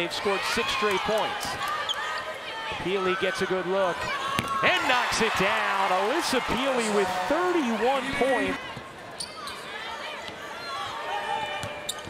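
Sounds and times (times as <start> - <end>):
sneakers squeaking: 8.2 - 12.0.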